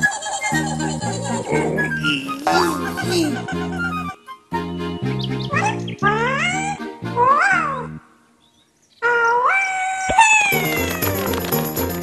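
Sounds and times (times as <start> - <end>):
cheerful children's music: 0.0 - 8.0, 10.5 - 12.0
high squeaky cartoon voice: 5.6 - 7.9.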